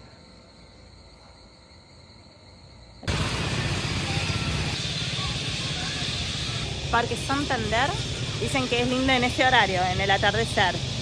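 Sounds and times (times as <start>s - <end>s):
faint insect trill: 0.0s - 3.1s
low rumble of street traffic: 0.0s - 11.0s.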